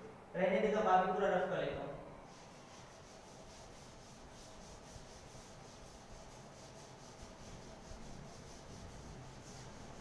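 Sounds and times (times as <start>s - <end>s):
duster rubbing a chalkboard: 2.3s - 10.0s.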